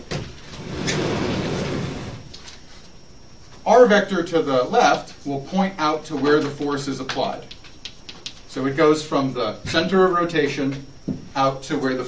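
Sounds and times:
chalkboard rolling on track: 0.4s - 2.3s.

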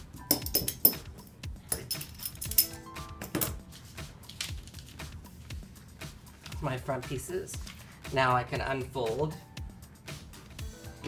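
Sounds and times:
background music: 0.0s - 11.0s
steel washers clinking: 0.2s - 1.1s, 1.7s - 3.5s.

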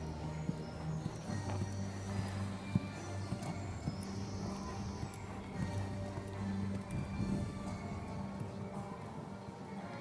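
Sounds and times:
hooves thudding on sand: 0.0s - 10.0s.

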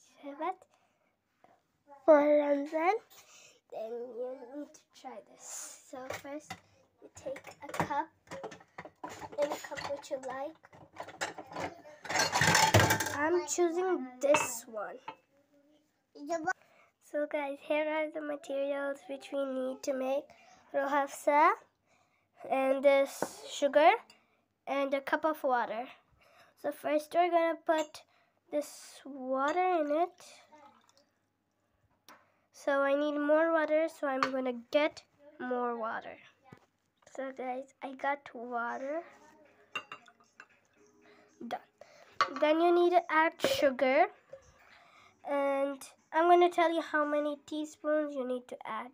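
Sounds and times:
glass cup clinking on countertop: 14.3s - 15.2s, 39.7s - 40.5s, 42.2s - 42.5s.

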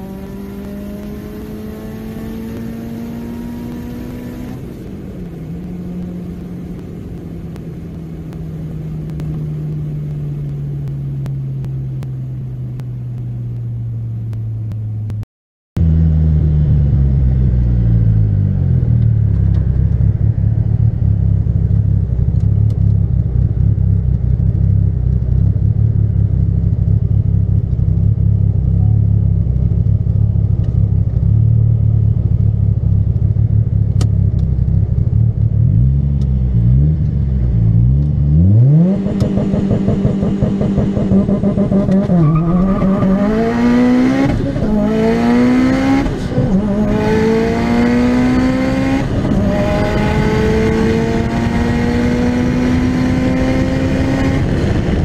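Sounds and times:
turbocharged car engine revving: 0.0s - 12.8s, 15.8s - 55.0s.

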